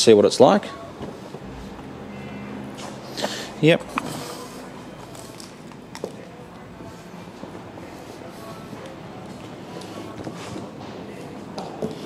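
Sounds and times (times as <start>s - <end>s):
indoor room noise: 0.0s - 12.0s
footsteps: 1.0s - 3.4s.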